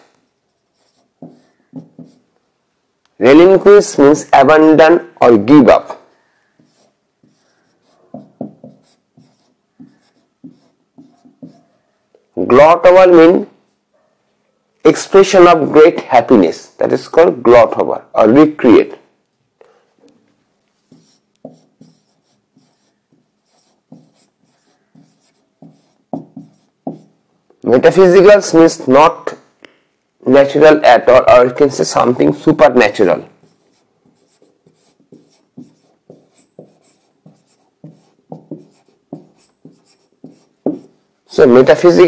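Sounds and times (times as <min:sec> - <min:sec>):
marker pen writing on whiteboard: 0:00.2 - 0:02.3, 0:06.5 - 0:11.8, 0:20.6 - 0:27.2, 0:33.4 - 0:41.0.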